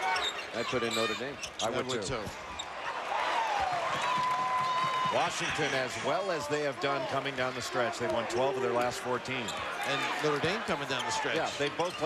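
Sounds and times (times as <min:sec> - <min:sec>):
crowd noise: 0:00.0 - 0:12.0
basketball court sounds: 0:03.5 - 0:05.9.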